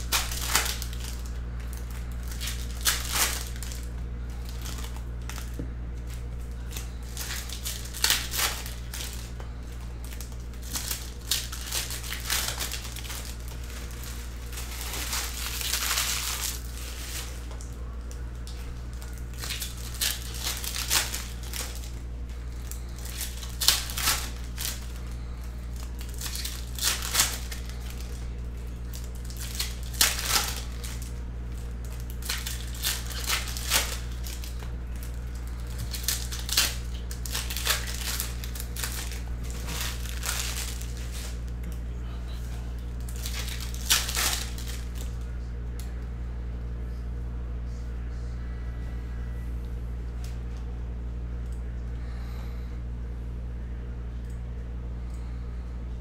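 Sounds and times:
foil wrappers crinkling and tearing: 0.0 - 46.0
steady low hum: 0.0 - 56.0.

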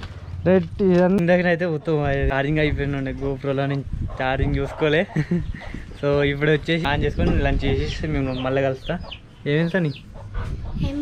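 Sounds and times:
chicken clucking: 7.5 - 11.0.

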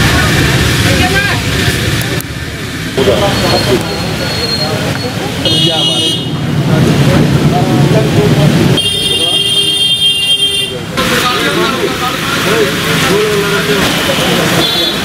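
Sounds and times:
vehicle running: 0.0 - 5.4, 6.3 - 9.3, 10.8 - 15.0
people's voices in background: 0.0 - 15.0
heavy rain hiss: 10.8 - 15.0.

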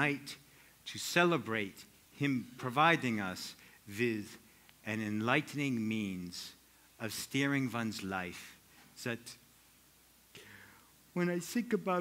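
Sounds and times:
man speaking: 0.0 - 9.5, 11.1 - 12.0
faint breath: 0.5 - 0.8, 10.3 - 11.0.

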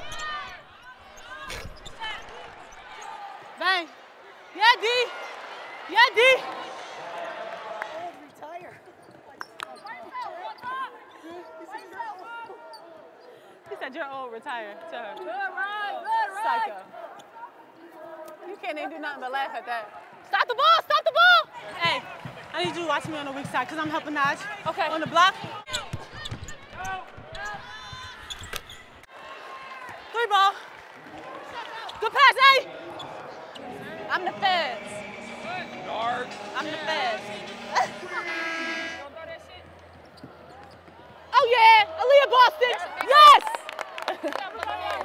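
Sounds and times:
players calling out: 31.2 - 43.6
loud shout: 41.3 - 43.9.

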